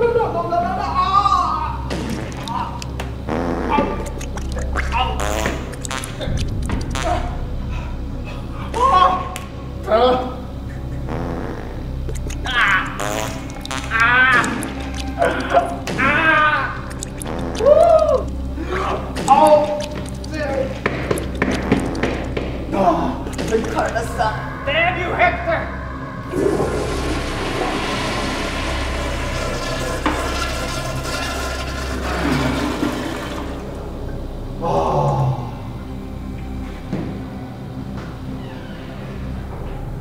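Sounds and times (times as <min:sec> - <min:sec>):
low background music: 0:00.0 - 0:40.0
toilet flushing water rush: 0:26.3 - 0:34.0.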